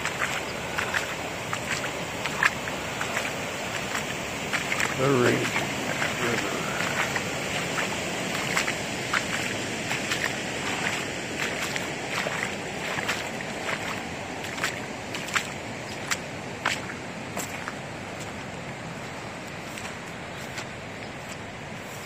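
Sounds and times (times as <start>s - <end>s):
footsteps on wet gravel: 0.0s - 22.0s
river rushing: 0.0s - 22.0s.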